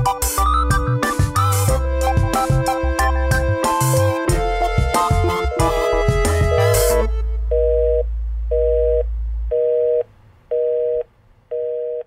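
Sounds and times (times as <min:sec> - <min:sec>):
low drone: 0:04.3 - 0:10.0
telephone busy signal: 0:07.5 - 0:08.0, 0:08.6 - 0:12.0.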